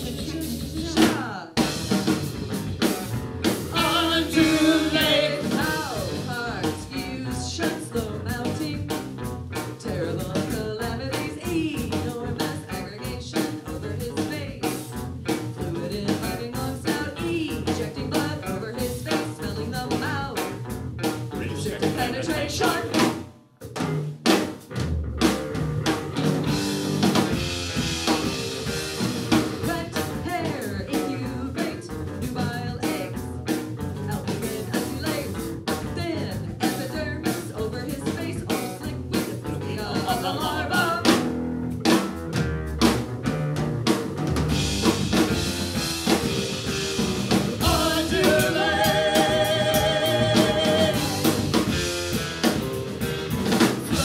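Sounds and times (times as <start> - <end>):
live rock band playing: 0.0 - 54.0
person singing: 3.7 - 8.7, 21.4 - 23.1, 36.0 - 41.2, 47.6 - 51.3.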